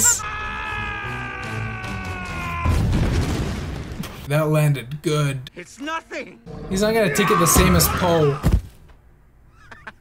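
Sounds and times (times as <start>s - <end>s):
rumbling crash: 2.7s - 4.3s.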